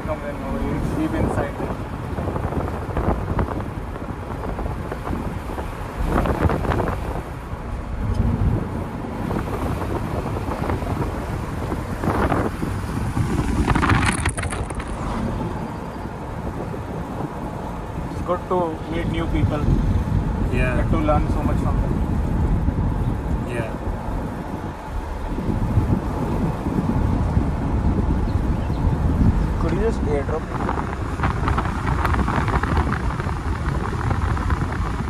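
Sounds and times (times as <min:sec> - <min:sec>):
car road noise rumble: 0:00.0 - 0:35.0.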